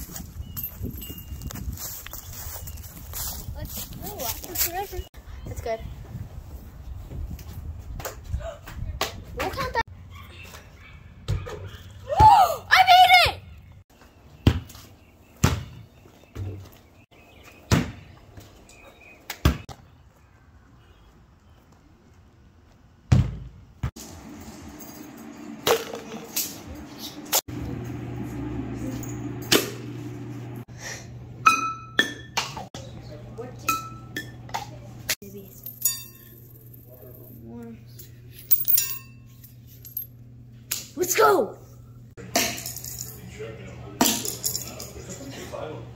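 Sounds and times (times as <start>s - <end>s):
person shouting excitedly: 12.0s - 13.5s
balls bouncing on hard surfaces: 23.1s - 23.9s
low hum: 24.0s - 40.7s.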